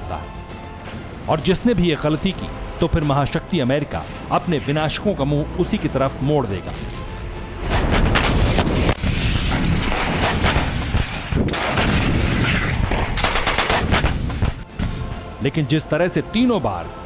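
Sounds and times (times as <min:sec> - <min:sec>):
artillery guns firing: 0:07.6 - 0:15.0.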